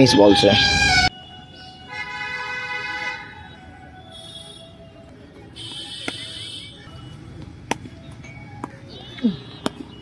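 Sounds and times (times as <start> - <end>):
vehicle horn honking: 0.0 - 4.8, 5.6 - 7.1.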